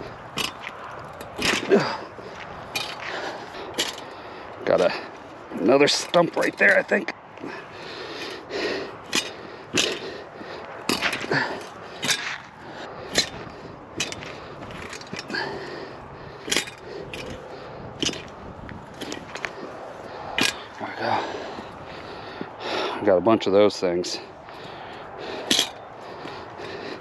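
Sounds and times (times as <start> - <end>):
tiller tines scraping rocky soil: 0.0 - 7.0, 10.9 - 22.1, 24.5 - 26.8.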